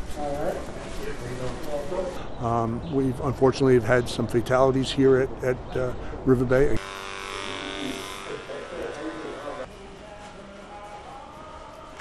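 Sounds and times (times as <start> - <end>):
sprayer motor buzzing: 6.8 - 9.7.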